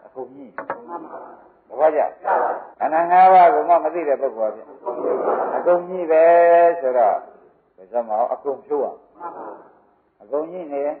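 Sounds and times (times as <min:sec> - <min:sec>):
man preaching: 0:00.0 - 0:09.1, 0:10.2 - 0:11.0.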